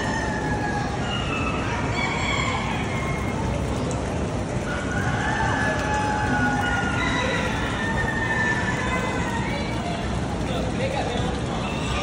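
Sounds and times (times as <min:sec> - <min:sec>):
crowd din: 0:00.0 - 0:12.0
fan noise: 0:00.0 - 0:12.0.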